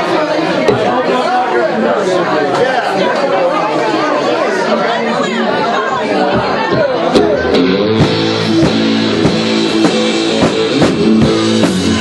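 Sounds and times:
people talking and laughing: 0.0s - 12.0s.

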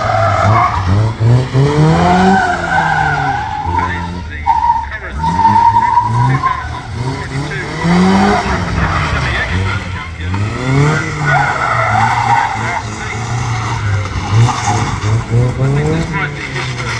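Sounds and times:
car engine revving: 0.0s - 16.9s
tyres skidding and squealing: 0.0s - 16.9s.

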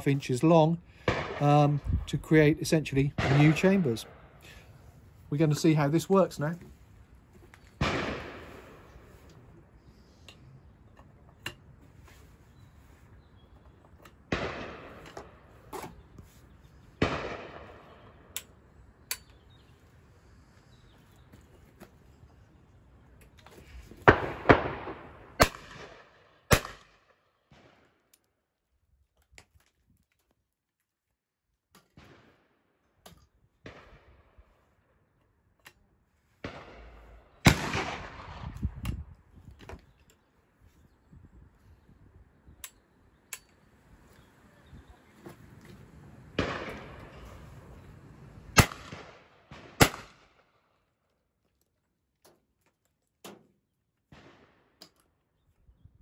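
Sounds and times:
shotgun shots with ringing tail: 1.0s - 1.7s, 3.1s - 4.5s, 7.8s - 8.9s, 17.0s - 18.0s, 24.1s - 27.0s, 36.4s - 38.5s, 46.4s - 47.2s, 48.6s - 50.4s.

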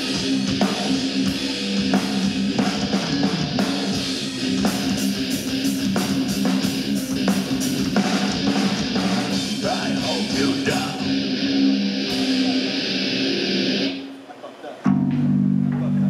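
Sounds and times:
heavy metal band playing: 0.0s - 14.2s.

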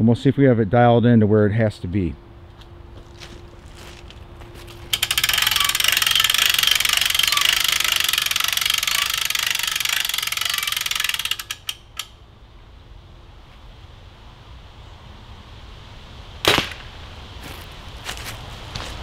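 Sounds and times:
rapid ratcheting clicks: 4.9s - 12.2s
separate mechanical clicks: 4.9s - 12.2s.

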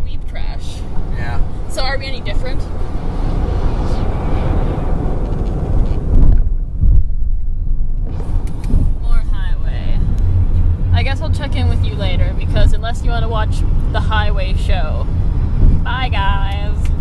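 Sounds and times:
car cabin road rumble: 0.0s - 17.0s.

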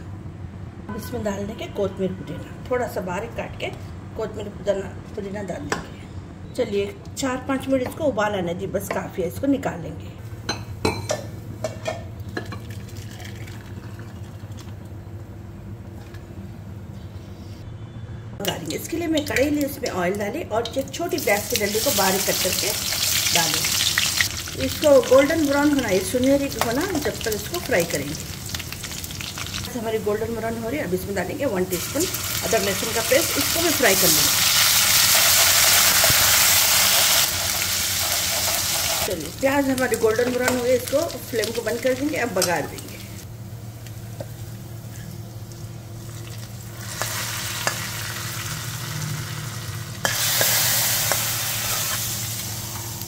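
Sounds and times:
pot simmering with low hum: 10.2s - 53.0s
oil sizzling loudly: 21.2s - 53.0s.

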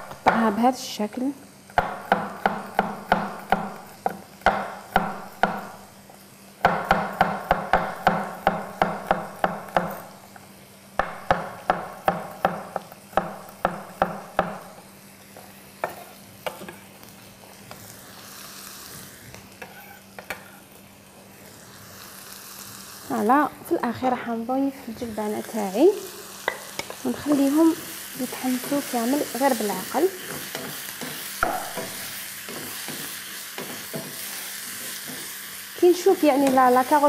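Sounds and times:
food sizzling in a pan: 0.0s - 37.0s
knife chopping on wooden board: 1.8s - 5.7s, 30.3s - 34.2s.

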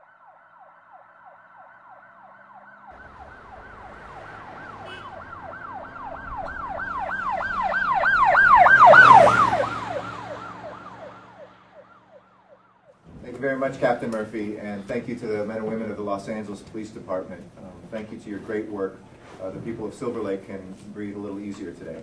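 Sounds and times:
siren yelping: 0.0s - 13.0s
vehicle engine and road noise: 0.2s - 22.0s.

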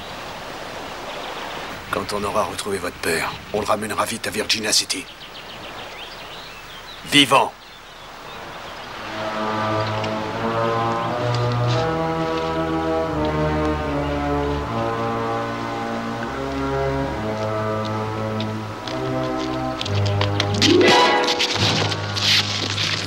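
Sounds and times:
orchestral film score: 9.0s - 22.8s.

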